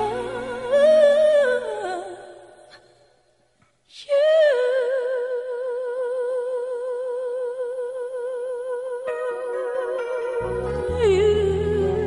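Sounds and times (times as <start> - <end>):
high voice singing with vibrato: 0.0 - 2.6, 4.0 - 12.0.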